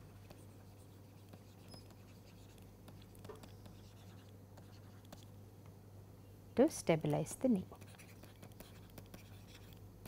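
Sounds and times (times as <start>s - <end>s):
stylus scratching on tablet screen: 0.0s - 5.3s, 7.7s - 9.8s
low electrical hum: 0.0s - 10.0s.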